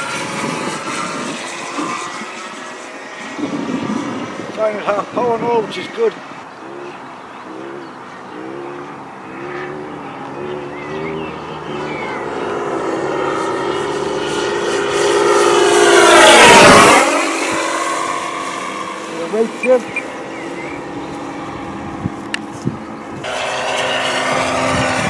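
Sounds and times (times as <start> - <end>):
model plane engine and propeller: 0.0 - 25.0.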